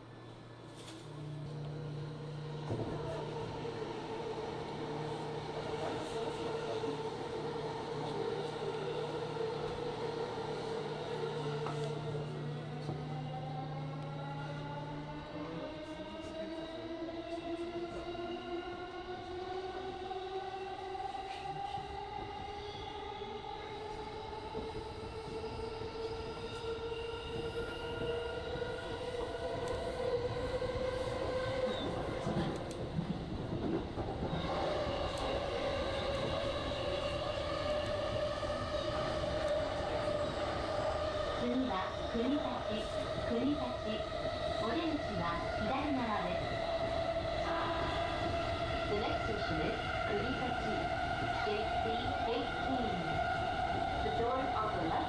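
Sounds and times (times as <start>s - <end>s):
electric train motor whine rising: 0.0s - 20.0s
rumble of wheels on rail: 0.0s - 55.0s.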